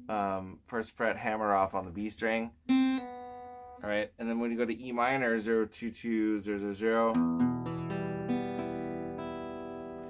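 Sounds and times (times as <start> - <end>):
acoustic guitar chord ringing: 2.7 - 3.8, 7.1 - 10.0.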